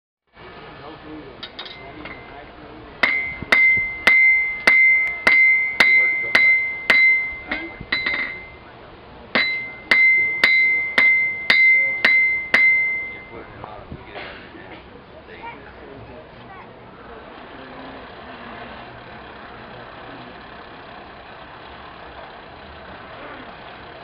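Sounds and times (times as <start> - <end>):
hammer striking steel on anvil: 1.4 - 2.4, 3.0 - 8.6, 9.3 - 13.4.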